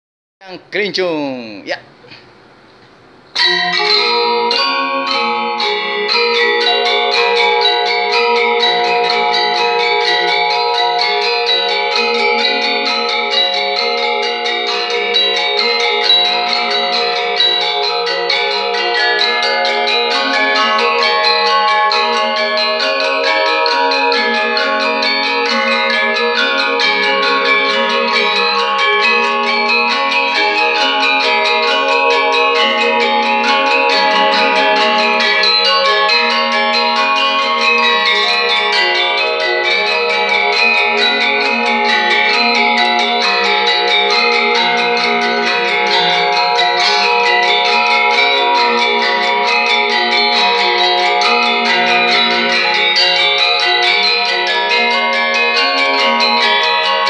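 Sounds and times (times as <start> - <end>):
metallophone ensemble playing: 3.3 - 57.0.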